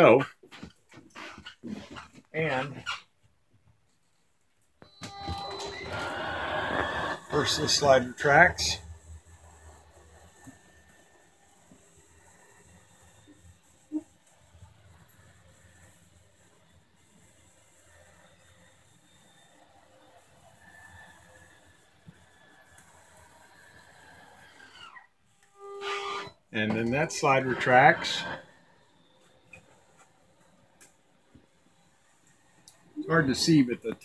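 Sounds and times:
faint motor whine: 4.8 - 34.0.

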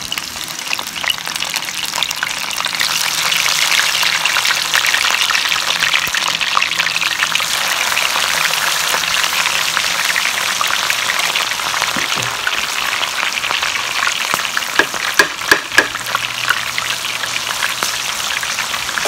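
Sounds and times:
vegetables sizzling in hot oil: 0.0 - 19.0.

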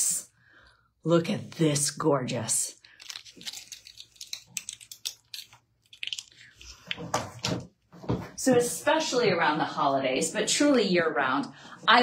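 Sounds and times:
earrings and card crinkling: 2.8 - 7.1.

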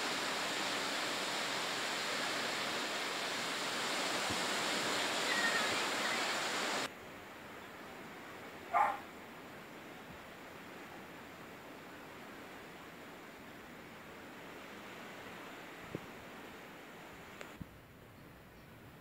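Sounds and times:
small waves breaking on sand: 0.0 - 7.2.

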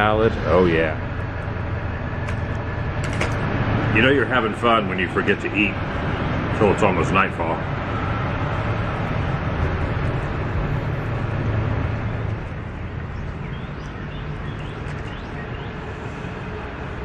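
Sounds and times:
traffic rumble: 0.0 - 17.0
vehicle passing: 0.0 - 17.0.

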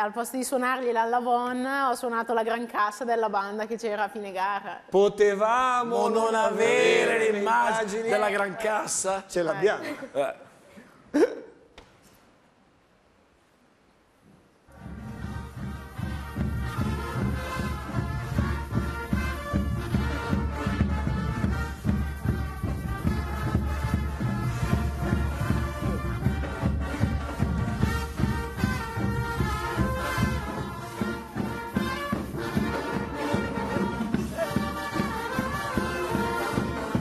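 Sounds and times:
brass marching band playing: 6.0 - 8.4, 14.7 - 37.0
bass drum steady beat: 15.0 - 37.0.

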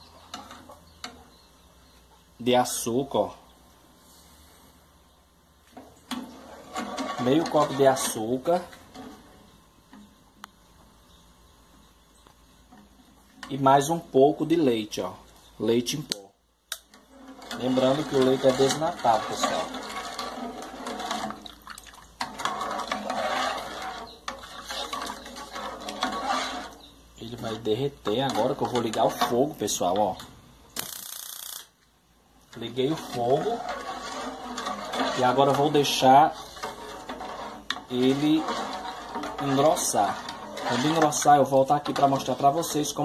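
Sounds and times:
metal spoon scraping in a pot: 0.1 - 1.5, 5.8 - 10.1, 16.8 - 30.2, 32.5 - 43.0
liquid sloshing in pan: 5.7 - 10.1, 16.8 - 30.1, 32.4 - 43.0.

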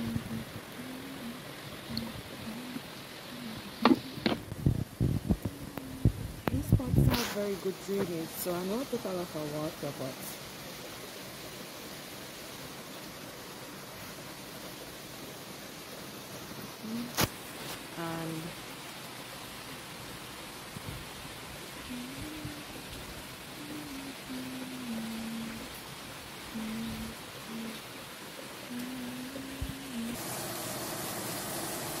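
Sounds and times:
rain hiss: 0.0 - 32.0.

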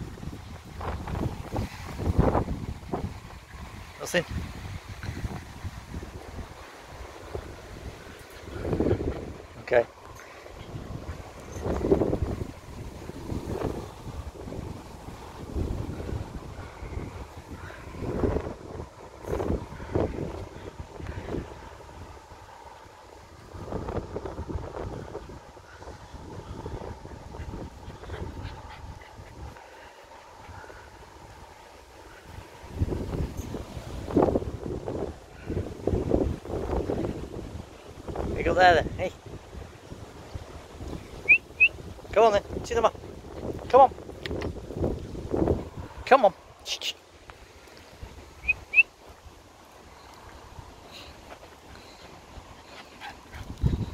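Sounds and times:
wind buffeting microphone: 0.0 - 53.9
person whistling short chirps: 48.4 - 48.9.

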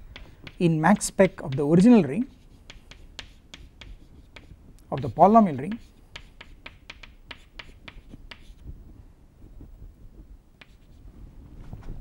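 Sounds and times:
chalk tapping on blackboard: 0.0 - 8.6, 10.6 - 11.0.

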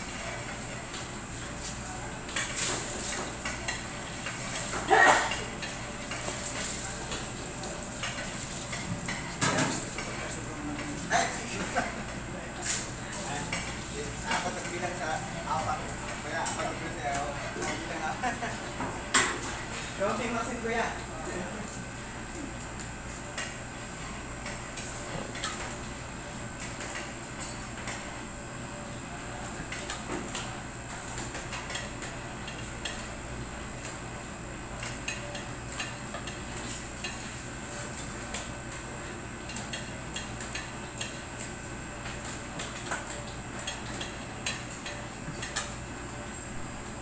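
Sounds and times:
air conditioner hum: 0.0 - 47.0.

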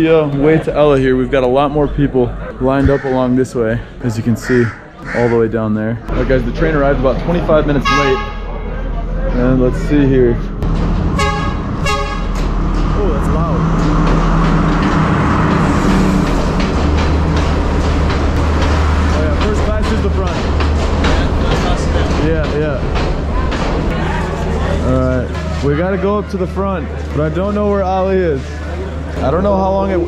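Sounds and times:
crowd voices: 0.0 - 10.7, 12.4 - 30.0
diesel train engine rumble: 6.0 - 30.0
train horn toots: 7.7 - 8.5, 11.1 - 12.5.

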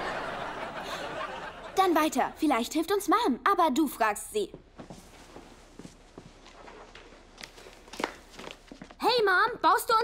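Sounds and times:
footsteps on hard floor: 4.5 - 9.0.

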